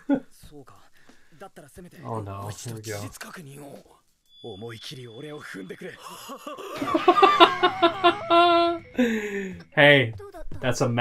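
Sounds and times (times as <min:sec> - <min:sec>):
man laughing hard: 0:06.0 - 0:09.2.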